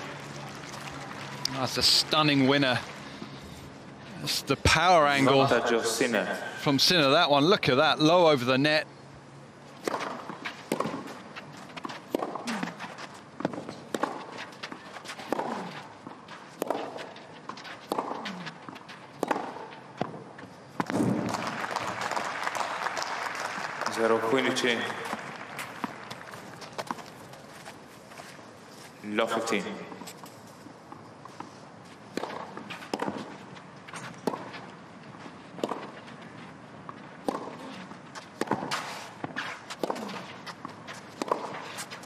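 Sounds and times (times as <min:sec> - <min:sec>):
shoes scuffing on clay court: 0:09.8 - 0:21.5, 0:23.9 - 0:42.0
racket hitting tennis ball: 0:09.8 - 0:21.7, 0:32.1 - 0:42.0.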